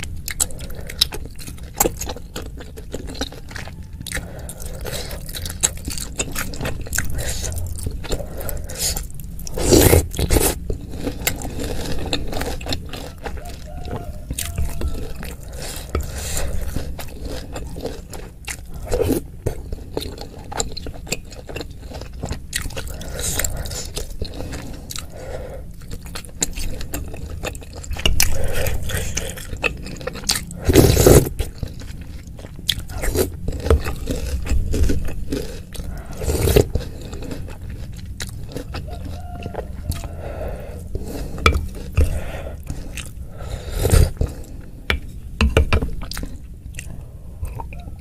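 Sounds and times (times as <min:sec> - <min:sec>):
wet chewing and smacking: 0:00.0 - 0:48.0.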